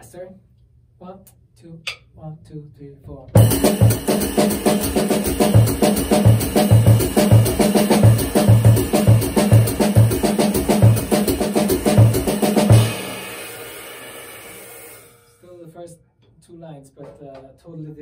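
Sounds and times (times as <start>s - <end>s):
jazz drum kit playing: 3.4s - 15.4s
cymbals ringing: 12.8s - 15.5s.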